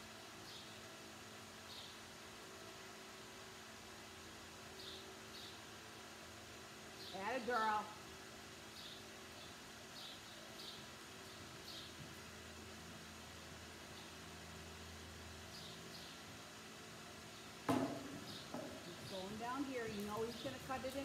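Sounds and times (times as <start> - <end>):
faint ambience: 0.0 - 21.0
loud thump: 17.7 - 18.8.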